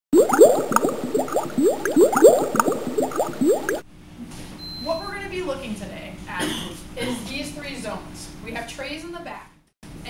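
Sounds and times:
water bubbling and gurgling: 0.1s - 3.8s.

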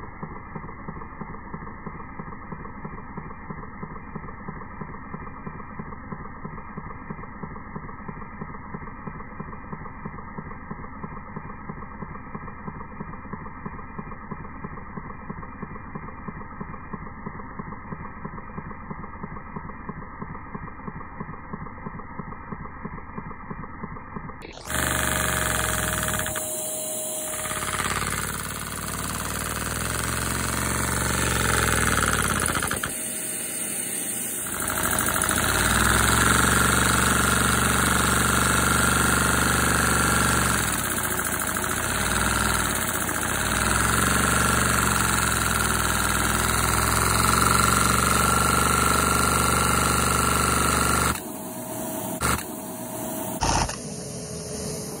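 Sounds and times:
toy vacuum engine drone: 24.4s - 55.0s.

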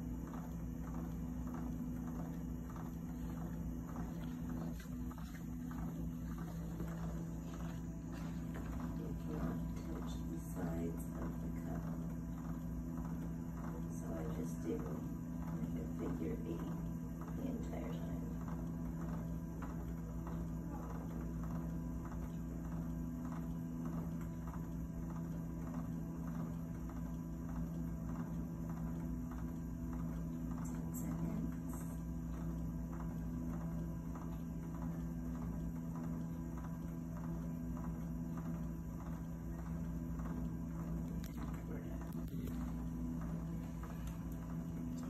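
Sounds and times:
soft regular ticking: 0.0s - 45.0s
steady machine hum: 0.0s - 45.0s.

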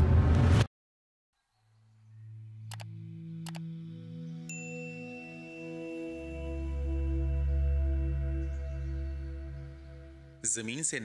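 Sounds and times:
ambient low sustained tones: 1.5s - 10.4s
short clicks: 2.7s - 3.7s
high ringing chime: 4.5s - 7.2s.

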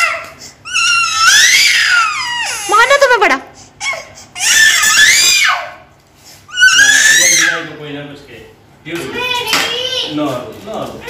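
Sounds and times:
toddler crying: 0.0s - 3.1s, 3.8s - 5.9s, 6.5s - 7.7s.

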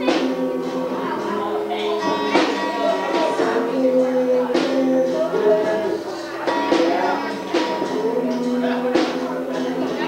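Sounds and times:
acoustic guitar: 0.0s - 10.0s
drum kit: 0.0s - 10.0s.

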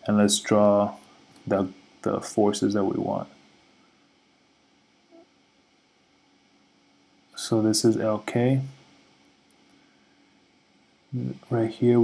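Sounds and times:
faint room hiss: 0.0s - 12.0s.

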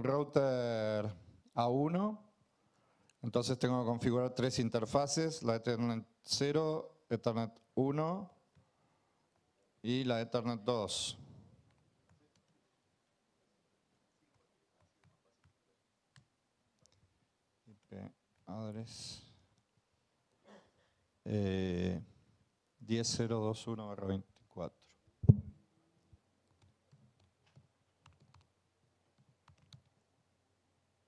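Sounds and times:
laptop keys typing: 26.4s - 30.0s.

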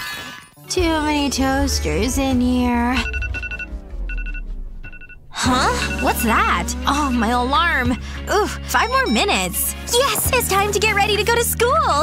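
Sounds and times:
electronic alarm beeps: 3.0s - 9.6s.

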